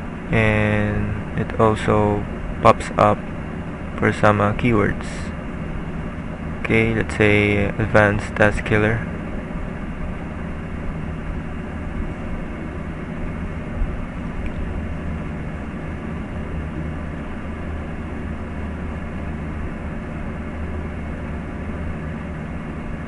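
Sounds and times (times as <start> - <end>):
room hum and hiss: 0.0 - 23.0.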